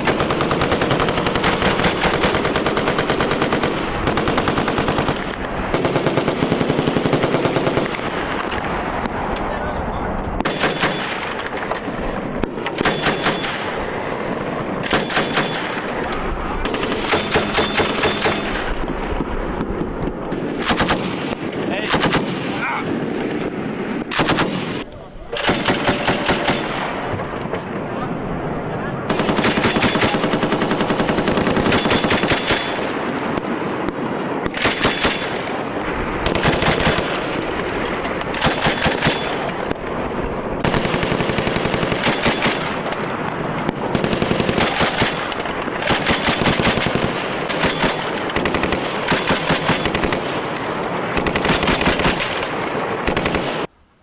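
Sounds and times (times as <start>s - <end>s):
machine gun bursts: 14.8s - 16.0s, 24.1s - 27.1s, 29.1s - 33.0s, 34.5s - 39.9s, 40.6s - 50.4s, 51.1s - 53.7s.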